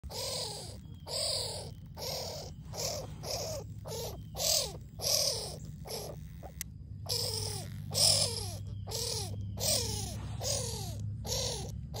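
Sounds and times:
baby skunk squeaking calls: 0.0 - 12.0.

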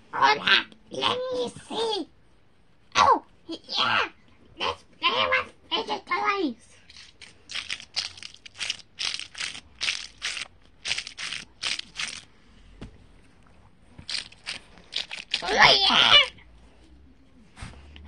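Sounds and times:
child making voice sounds: 15.4 - 16.4.

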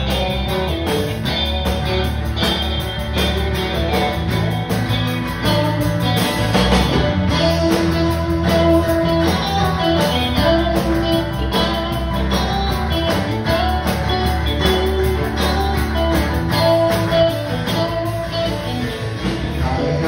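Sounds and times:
bass guitar: 0.0 - 20.0
guitars playing melody: 0.0 - 20.0
steady drum beat: 0.0 - 20.0.

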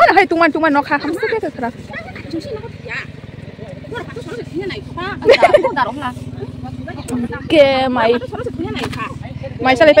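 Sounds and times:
people talking: 0.0 - 10.0
small engine humming: 0.0 - 10.0.

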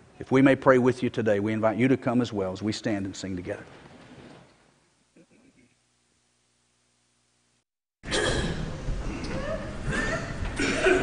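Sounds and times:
faint room hum: 0.0 - 11.0.

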